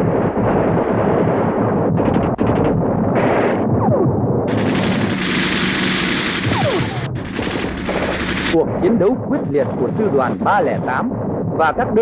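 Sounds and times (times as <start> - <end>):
rapid machine-gun fire: 4.5 - 12.0
person speaking: 8.5 - 12.0.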